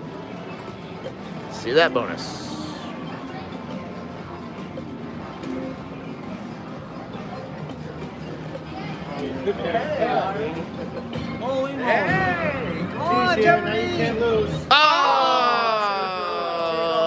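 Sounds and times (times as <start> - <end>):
chatter: 0.0 - 17.0.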